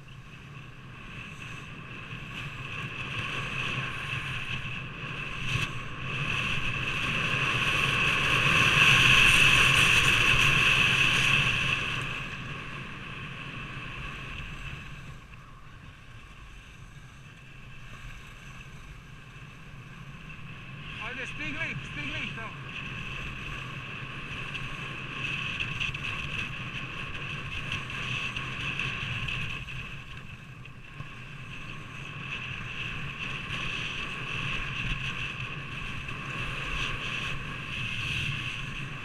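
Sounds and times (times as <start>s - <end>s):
wind rushing on microphone: 0.0s - 39.0s
skis scraping over snow: 0.3s - 39.0s.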